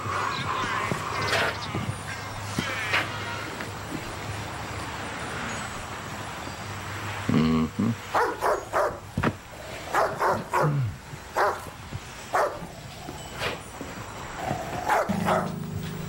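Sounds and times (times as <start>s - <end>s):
dog barking: 8.1s - 9.0s, 9.9s - 10.8s, 11.4s - 11.7s, 12.3s - 12.7s, 14.8s - 15.6s
low steady hum: 15.1s - 16.0s.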